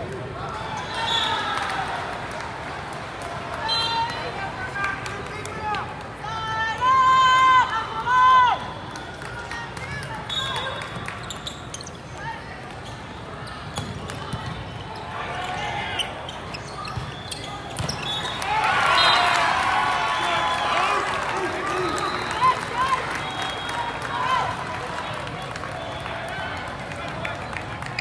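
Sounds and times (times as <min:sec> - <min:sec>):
crowd shouting and cheering: 0:00.0 - 0:11.1, 0:17.9 - 0:28.0.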